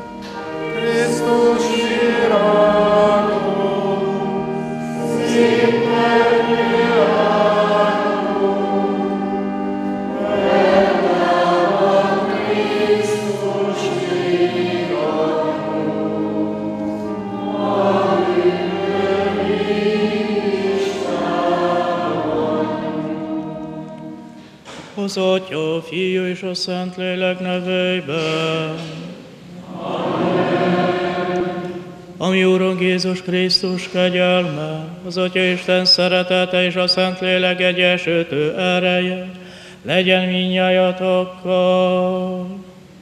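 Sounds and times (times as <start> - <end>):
congregation singing a hymn: 0.0 - 42.9
pipe organ chords: 0.0 - 43.0.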